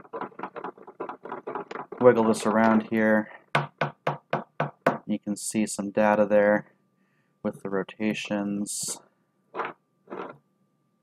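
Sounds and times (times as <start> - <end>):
breadboard scraping on wooden table: 0.0 - 2.8, 9.6 - 10.4
faint steady whine: 0.0 - 11.0.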